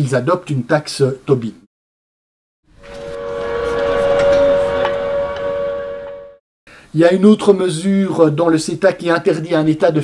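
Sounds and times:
whistle-like two-tone sound: 0:02.8 - 0:06.4.

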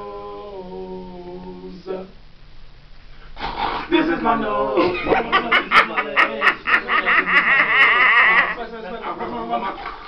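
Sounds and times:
young men laughing: 0:03.9 - 0:10.0.

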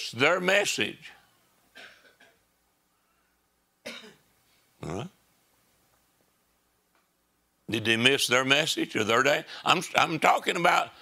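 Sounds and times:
man speaking: 0:00.0 - 0:01.2, 0:04.8 - 0:05.2, 0:07.7 - 0:11.0
person coughing: 0:01.8 - 0:02.4, 0:03.8 - 0:04.2.

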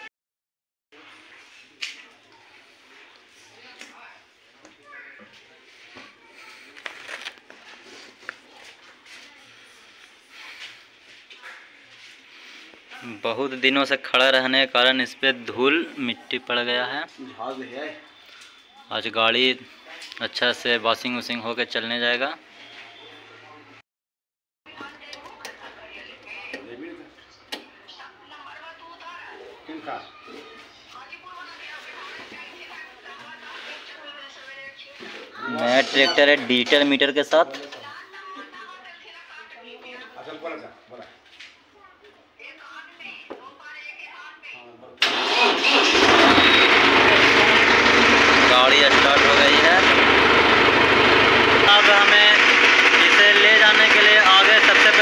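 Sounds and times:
people talking in background: 0:01.0 - 0:20.8, 0:22.4 - 0:23.8, 0:24.7 - 0:45.4
voices: 0:42.0 - 0:50.0, 0:50.7 - 0:55.0
tractor diesel engine starting and idling: 0:45.0 - 0:55.0.

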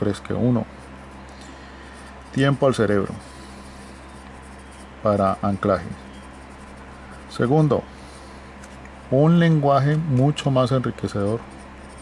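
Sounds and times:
low steady hum: 0:00.0 - 0:12.0
pen writing on paper: 0:01.9 - 0:07.8, 0:11.0 - 0:12.0.

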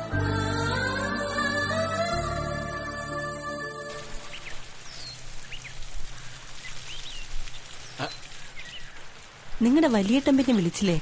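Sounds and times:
water spraying from garden hose: 0:03.9 - 0:11.0
small birds chirping: 0:04.2 - 0:11.0.

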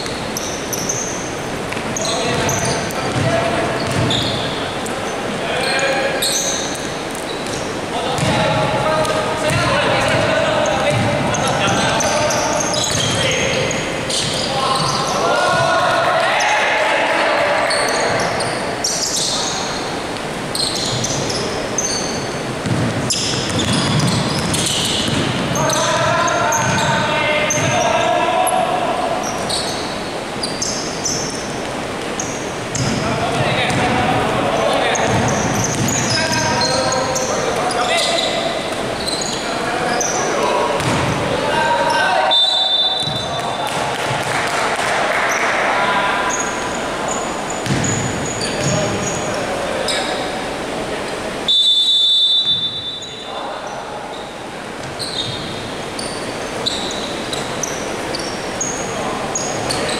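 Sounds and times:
players calling out: 0:00.1 - 0:59.9
basketball bouncing indoors: 0:01.7 - 0:04.5, 0:07.3 - 0:16.0, 0:20.8 - 0:27.8, 0:33.6 - 0:34.2, 0:34.9 - 0:36.7, 0:40.8 - 0:41.3, 0:43.0 - 0:44.4, 0:47.6 - 0:49.2.

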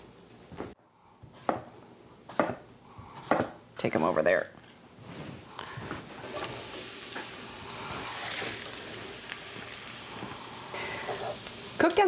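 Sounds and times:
vegetables sizzling in butter: 0:05.7 - 0:12.0.

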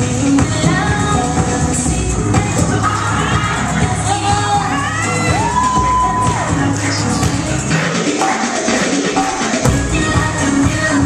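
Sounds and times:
music with singing over a beat: 0:00.0 - 0:11.0
crowd cheering: 0:04.7 - 0:07.0.

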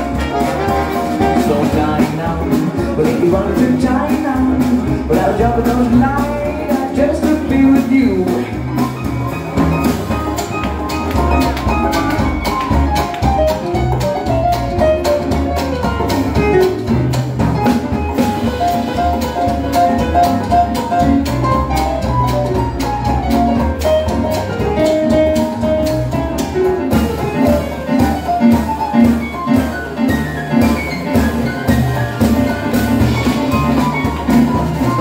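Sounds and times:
dixieland jazz band playing: 0:00.0 - 0:35.0.

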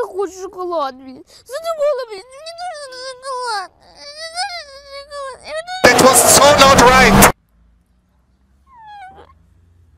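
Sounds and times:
boy wailing and crying: 0:01.4 - 0:06.6.

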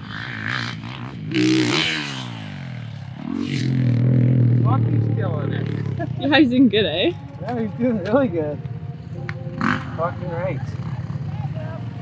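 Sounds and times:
dirt bike engine revving: 0:00.0 - 0:06.7, 0:09.5 - 0:12.0.

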